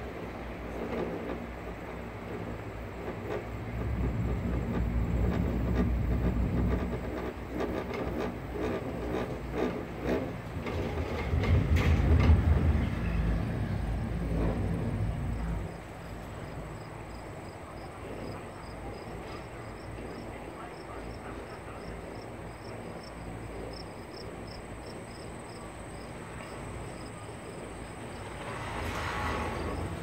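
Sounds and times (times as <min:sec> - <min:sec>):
chairlift mechanical rumble: 0:00.0 - 0:30.0.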